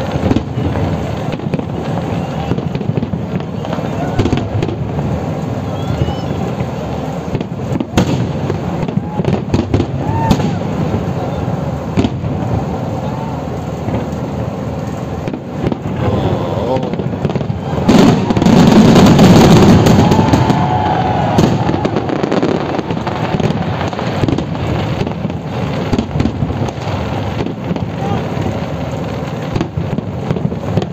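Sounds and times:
fireworks bursting and crackling: 0.0s - 30.9s.

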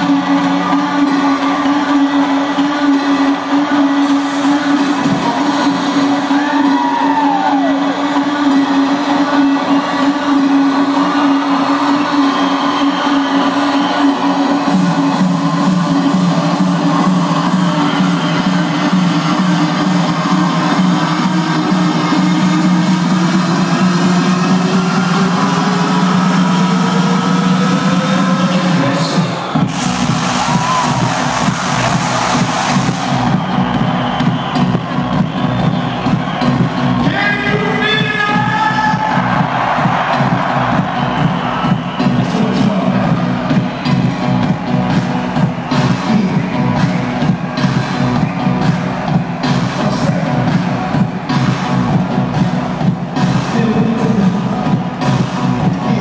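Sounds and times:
electronic dance music: 0.0s - 56.0s.

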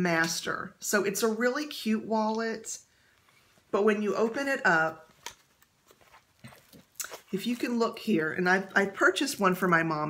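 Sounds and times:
wallet handling noise: 5.0s - 7.8s.

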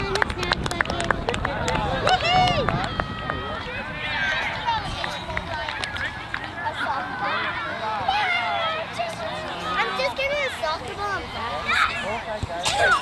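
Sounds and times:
people calling and shouting: 0.0s - 13.0s.

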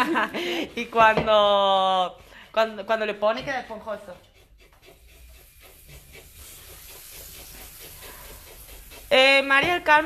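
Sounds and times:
spatula scraping batter in a bowl: 0.0s - 10.0s.

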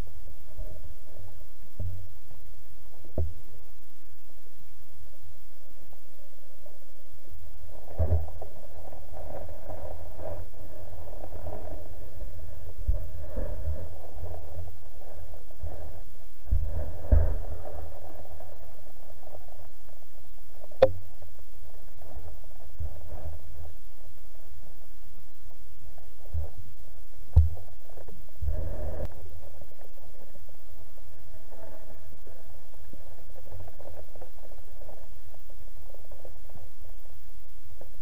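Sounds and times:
underwater low rumble: 0.0s - 38.0s.

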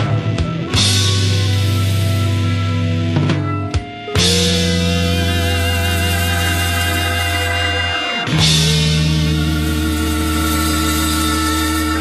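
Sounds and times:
rock band held chord: 0.0s - 12.0s.

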